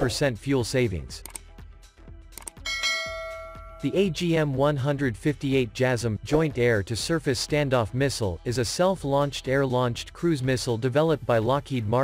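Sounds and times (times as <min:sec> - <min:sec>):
bell chime: 0:02.6 - 0:04.3.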